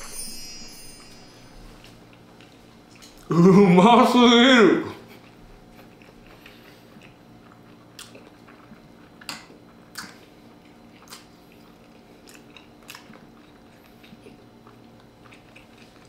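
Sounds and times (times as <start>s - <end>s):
chewing sausage: 2.0s - 3.4s, 4.9s - 16.0s.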